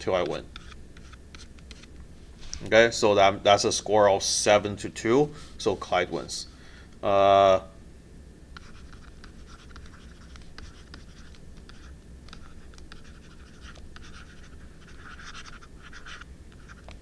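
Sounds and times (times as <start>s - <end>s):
scratchy pen strokes: 8.6s - 17.0s.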